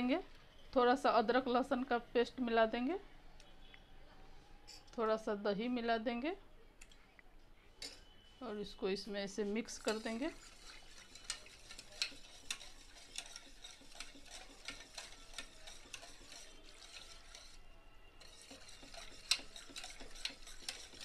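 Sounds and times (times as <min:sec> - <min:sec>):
spoon clinking in metal bowl: 0:07.8 - 0:08.1, 0:09.6 - 0:17.6, 0:18.2 - 0:21.0.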